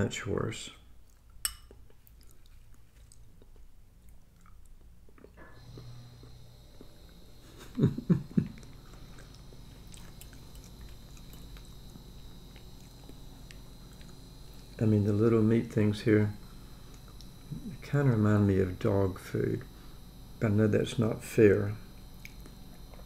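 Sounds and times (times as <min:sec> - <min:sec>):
faint hum with high whine: 0:00.0 - 0:23.0
man chewing food: 0:01.0 - 0:14.8, 0:16.4 - 0:17.7, 0:22.0 - 0:23.0.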